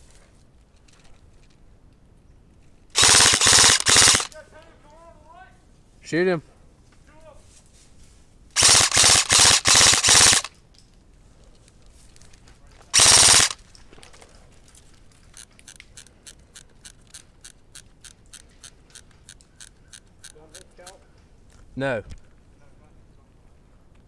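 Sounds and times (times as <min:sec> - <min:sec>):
airsoft rifle firing bursts: 0:03.0 - 0:04.3, 0:08.6 - 0:10.5, 0:13.0 - 0:13.6.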